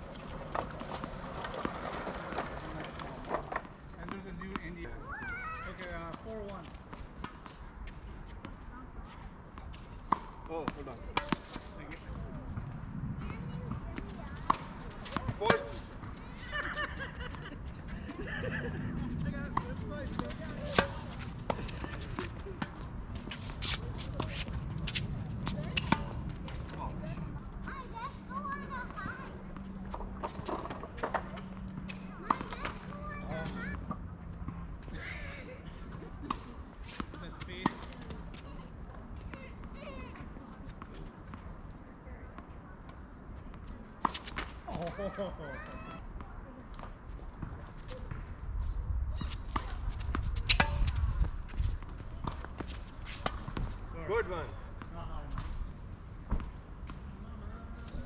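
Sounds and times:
tennis ball bouncing: 9.6s - 17.5s, 18.4s - 26.9s, 28.0s - 34.6s, 36.0s - 38.6s, 49.2s - 53.8s
voices: 10.6s - 48.2s
rackets striking tennis ball: 13.7s - 17.5s, 19.5s - 26.8s, 49.3s - 51.3s.

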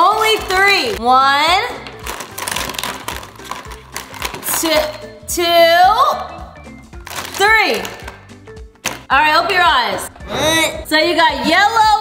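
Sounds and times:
background music: 0.0s - 12.0s
markers rattling in plastic basket: 2.0s - 4.7s.

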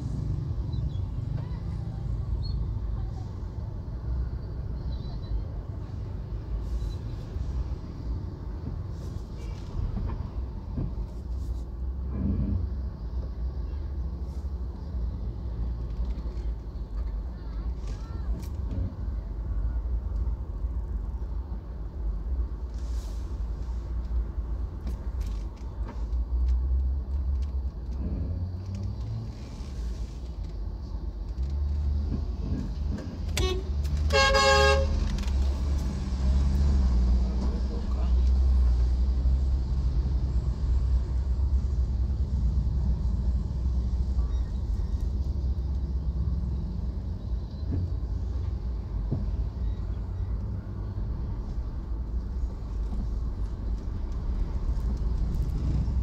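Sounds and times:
car engine rumble and road noise: 0.0s - 56.0s
vehicle horn blast: 33.4s - 35.0s.

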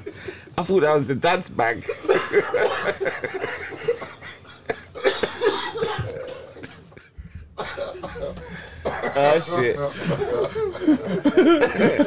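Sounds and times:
laughter: 1.8s - 5.4s, 9.8s - 12.0s
man coughing: 2.0s - 12.0s.

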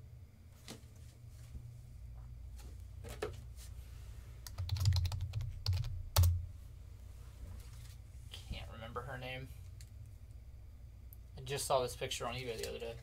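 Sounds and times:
typing on computer keyboard: 4.4s - 6.4s.

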